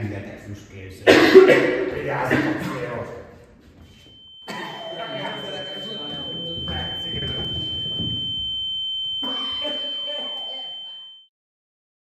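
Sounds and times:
high-pitched electronic alarm tone: 3.8 - 11.3.

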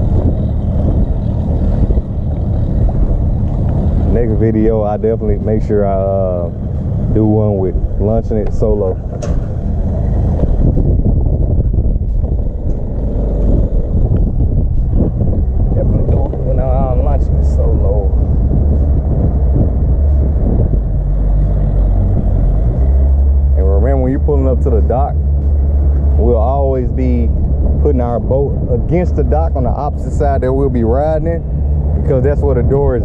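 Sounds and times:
wind on microphone: 0.0 - 33.0.

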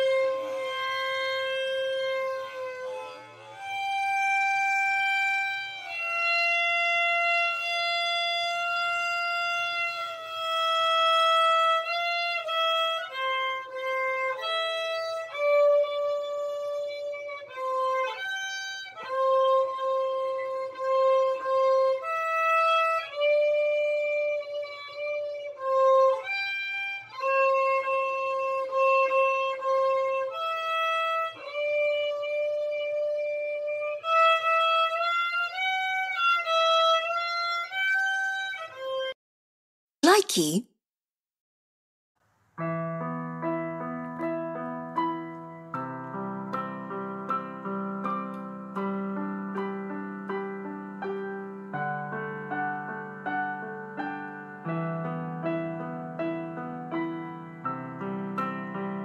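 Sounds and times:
violin playing slow melody: 0.0 - 39.2.

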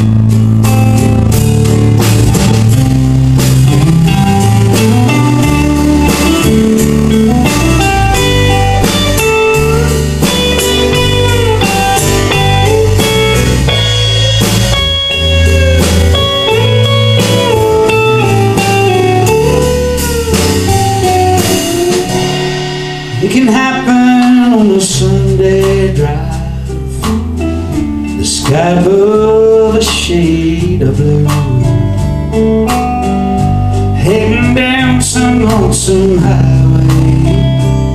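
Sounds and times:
electric guitar solo: 0.0 - 24.3
drum kit: 0.0 - 37.9
strummed acoustic guitar: 0.0 - 37.9.

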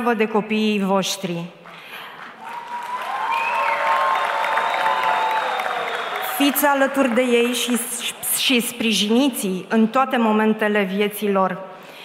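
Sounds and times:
audience applauding: 1.8 - 8.1.

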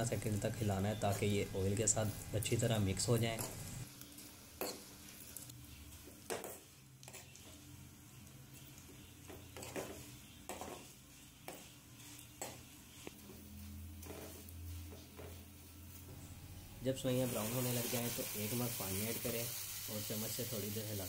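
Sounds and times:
faint oil sizzle: 0.0 - 21.0.

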